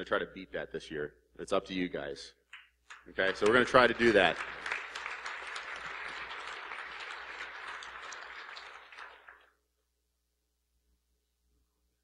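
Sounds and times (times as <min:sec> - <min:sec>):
audience applause: 0:03.2 - 0:09.5.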